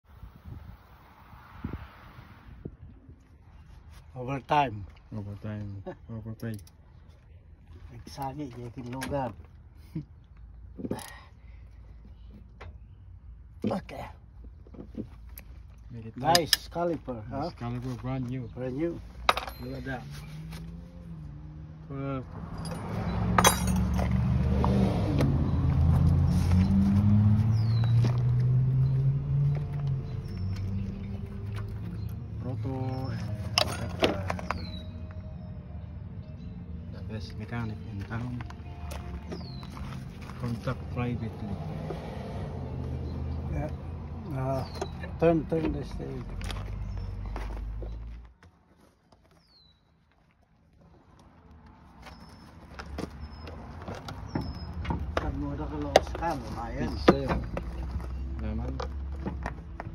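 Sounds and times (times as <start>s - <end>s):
engine humming: 14.5s - 48.5s.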